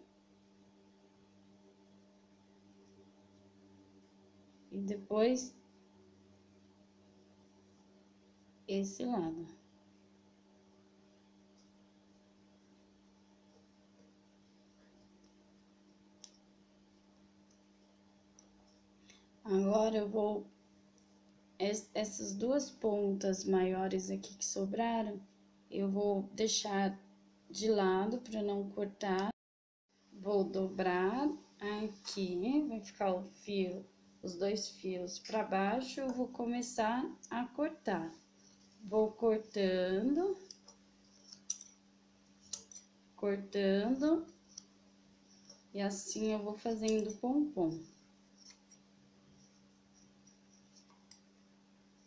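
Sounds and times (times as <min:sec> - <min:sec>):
faint steady hum: 0:00.0 - 0:52.0
scissors snipping yarn: 0:40.5 - 0:41.8, 0:42.4 - 0:42.9.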